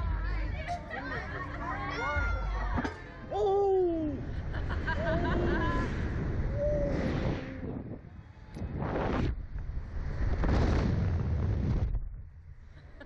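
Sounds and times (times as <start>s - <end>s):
wind buffeting microphone: 5.0s - 12.6s.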